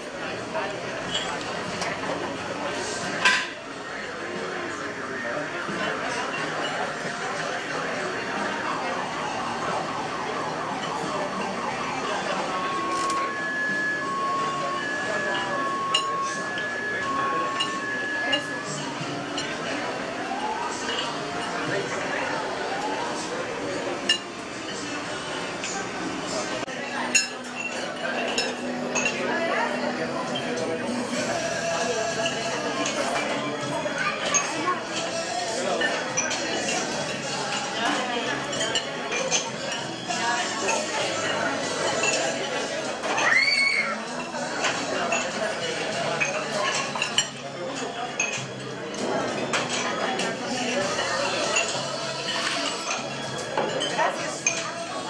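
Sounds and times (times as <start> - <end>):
chatter of diners: 0.0 - 55.0
murmur of many people talking: 0.0 - 55.0
tableware clinking: 1.0 - 2.2, 2.8 - 3.6, 10.8 - 11.1, 12.5 - 22.2, 23.9 - 25.0, 27.0 - 29.4, 34.2 - 43.4, 44.0 - 55.0.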